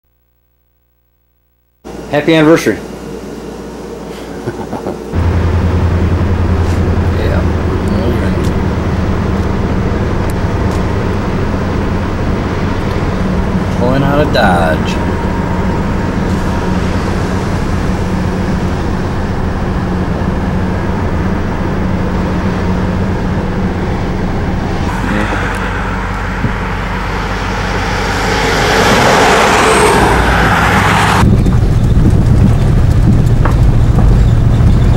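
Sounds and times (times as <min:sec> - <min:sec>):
motor coach passing roar: 0:04.8 - 0:32.4
car engine and road noise: 0:05.0 - 0:34.9
car rumbling on dirt road: 0:05.1 - 0:34.9.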